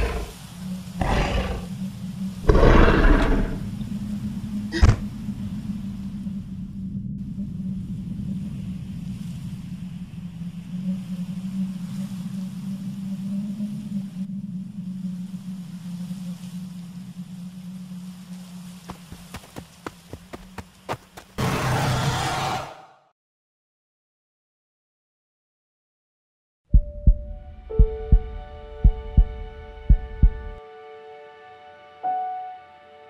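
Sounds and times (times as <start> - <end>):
low drone: 0.0 - 18.8.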